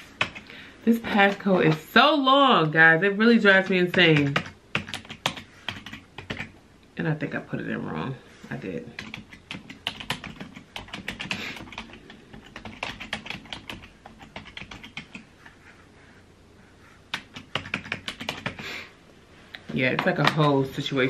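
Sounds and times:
typing on computer keyboard: 0:00.2 - 0:00.5, 0:03.6 - 0:06.5, 0:09.0 - 0:15.3, 0:17.1 - 0:18.6.

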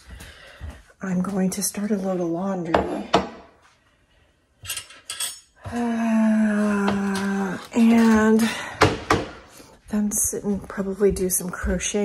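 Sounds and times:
dishes clinking clatter: 0:04.6 - 0:05.6.

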